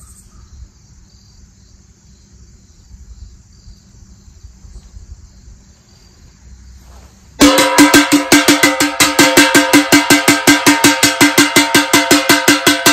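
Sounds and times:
ladle beating on metal pot: 0:07.4 - 0:12.9.

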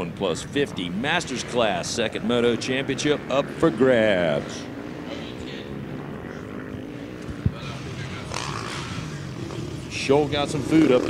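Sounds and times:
dirt bike engines revving: 0:00.0 - 0:11.0.

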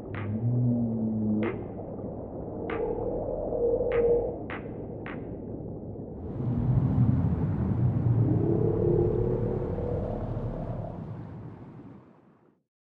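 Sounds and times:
humpback whale song: 0:00.0 - 0:04.6
rumbling underwater noise: 0:00.0 - 0:12.2.

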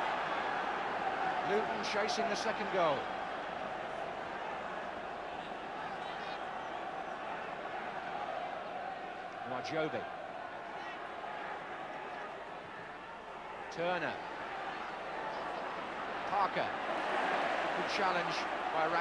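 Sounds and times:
stadium crowd noise: 0:00.0 - 0:19.0.

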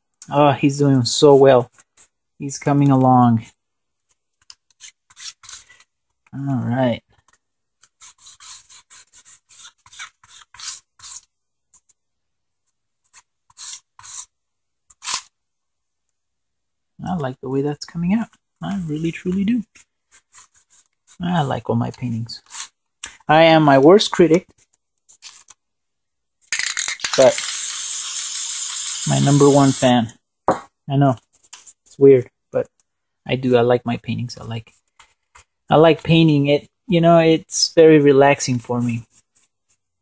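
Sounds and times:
paint rubbing on foam board: 0:07.9 - 0:11.3, 0:13.0 - 0:15.2
spray can rattling clicks: 0:26.5 - 0:29.1
spray paint can hissing: 0:26.5 - 0:29.9.

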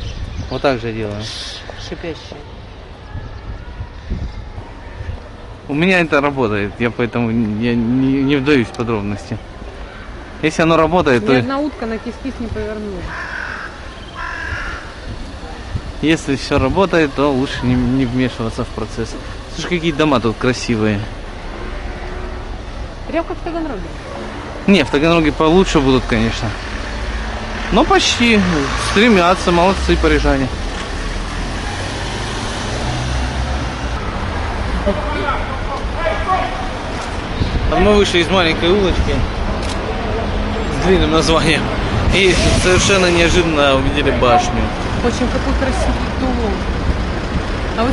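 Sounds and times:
low street rumble: 0:00.0 - 0:47.9
bird giving harsh calls: 0:13.0 - 0:15.2.

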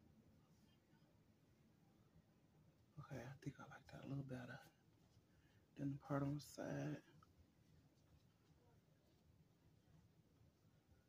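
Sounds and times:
woman speaking softly: 0:03.0 - 0:04.7, 0:05.8 - 0:07.1.

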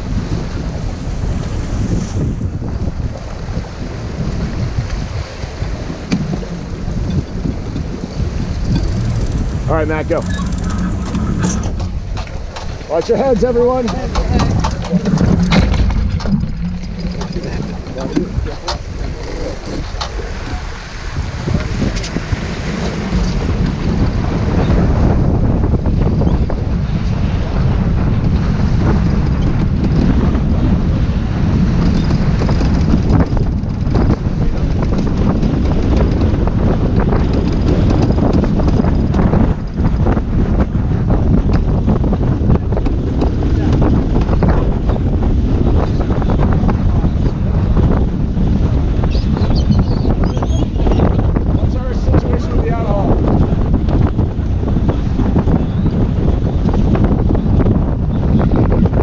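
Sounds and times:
water rushing along boat hull: 0:00.0 - 0:59.0
wind buffeting microphone: 0:00.0 - 0:59.0.

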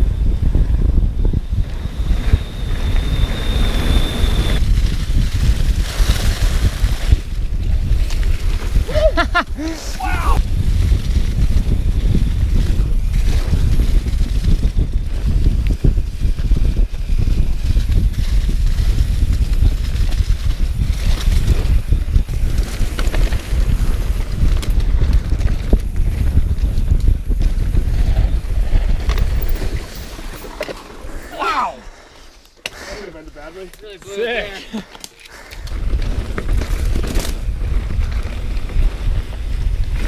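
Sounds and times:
wind buffeting microphone: 0:00.0 - 0:32.1, 0:34.7 - 0:40.0
bike tyres rumbling on dirt: 0:00.0 - 0:40.0.

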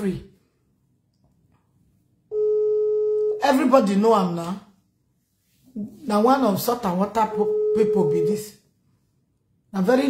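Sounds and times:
electronic beep: 0:07.2 - 0:08.5.

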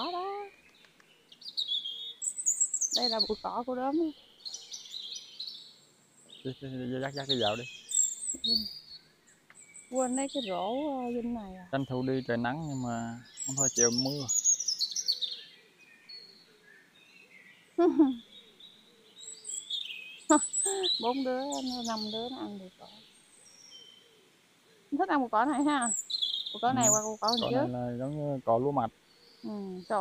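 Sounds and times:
small birds twittering: 0:00.0 - 0:30.0.

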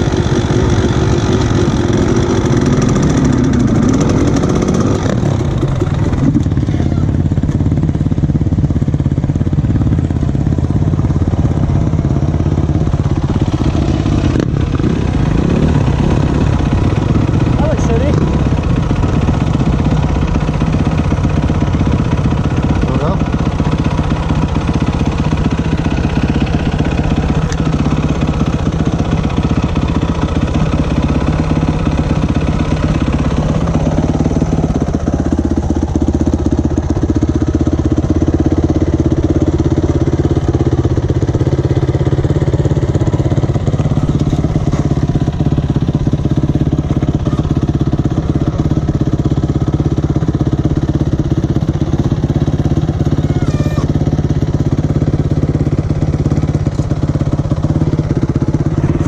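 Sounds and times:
dirt bike engine running: 0:00.0 - 0:59.0.

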